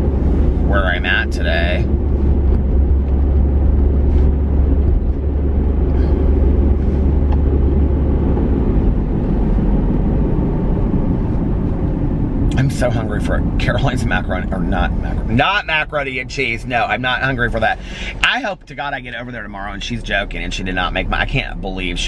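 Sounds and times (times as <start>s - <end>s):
car cabin road and engine rumble: 0.0s - 22.0s.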